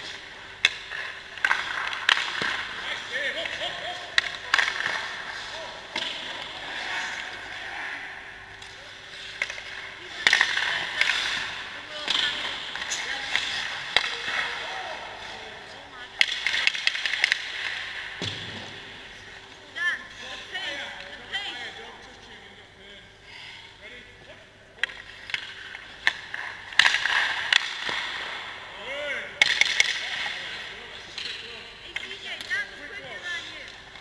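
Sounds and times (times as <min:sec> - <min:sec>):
hockey sticks and pucks knocking: 0:00.0 - 0:07.4, 0:08.5 - 0:15.4, 0:16.2 - 0:18.8, 0:24.8 - 0:28.4, 0:29.4 - 0:32.8.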